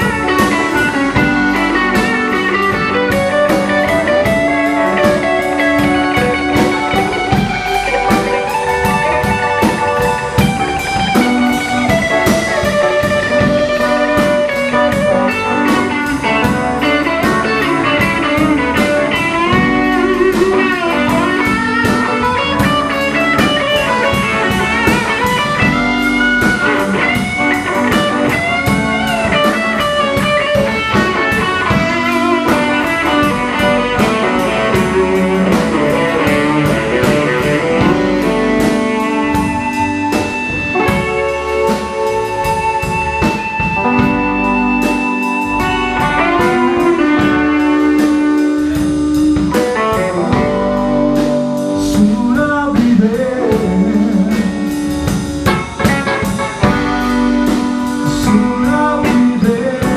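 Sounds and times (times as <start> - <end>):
bass guitar: 0.0 - 59.9
drum kit steady beat: 0.0 - 59.9
electric guitar bending notes: 0.0 - 59.9.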